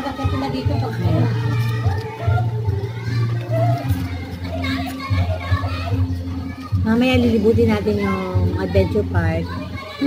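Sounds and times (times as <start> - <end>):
background chatter: 0.0 - 10.0
children's voices: 0.0 - 10.0.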